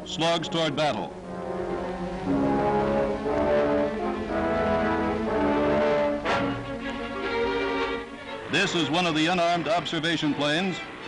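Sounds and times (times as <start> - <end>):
loud orchestral accent: 0.0 - 11.0
orchestral score with brass chords: 0.0 - 11.0.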